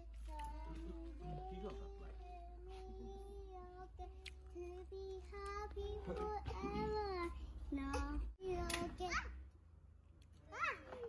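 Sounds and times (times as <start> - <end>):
child singing softly: 0.0 - 9.2.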